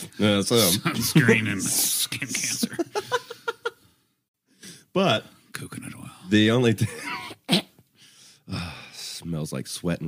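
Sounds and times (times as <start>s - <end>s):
man laughing: 0.6s - 3.8s, 6.8s - 7.4s
breath: 4.5s - 4.9s, 8.0s - 9.1s.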